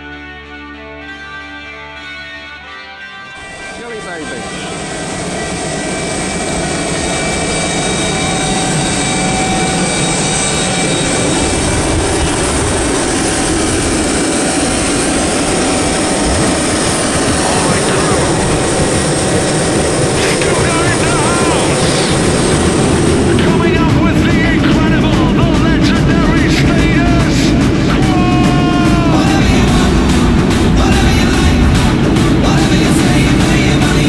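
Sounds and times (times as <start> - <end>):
jet engines whining: 3.0 - 34.0.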